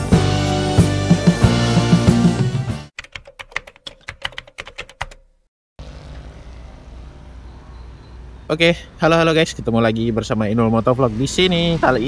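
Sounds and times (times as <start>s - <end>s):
rock music: 0.0s - 2.9s
rapid sharp typing clicks: 3.0s - 5.2s.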